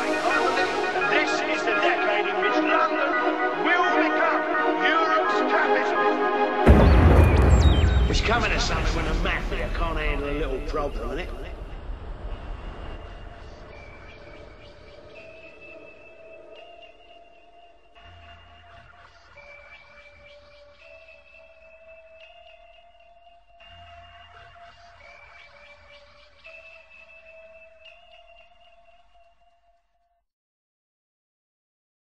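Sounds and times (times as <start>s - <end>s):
slow synthesizer melody: 0.0s - 8.0s.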